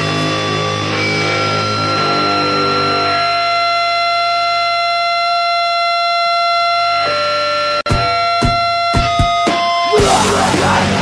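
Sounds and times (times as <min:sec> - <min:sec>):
punk band stabs: 0:00.0 - 0:03.4, 0:07.9 - 0:11.0
electric guitar feedback ringing: 0:00.0 - 0:11.0.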